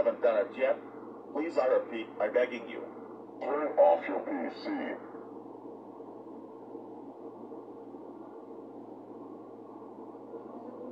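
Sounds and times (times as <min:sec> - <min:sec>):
low room tone hiss: 0:00.0 - 0:10.9.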